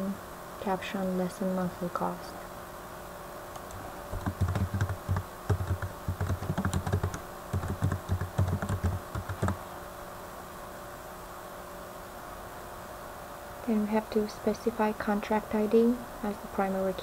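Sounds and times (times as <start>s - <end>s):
typing on keyboard: 3.6s - 9.6s.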